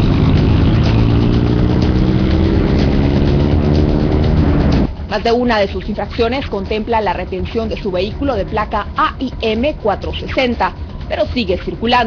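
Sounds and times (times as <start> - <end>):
car engine running: 0.0 - 12.0
street traffic: 0.0 - 12.0.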